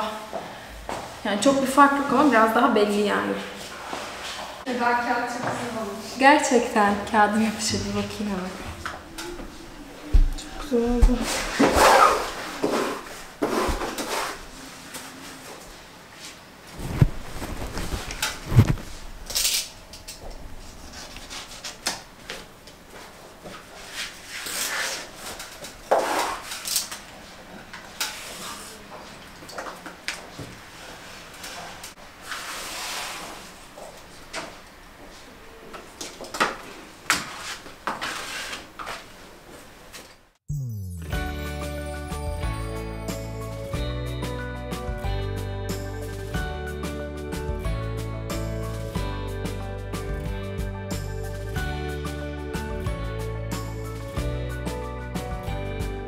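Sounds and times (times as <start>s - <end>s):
music: 40.5s - 56.0s.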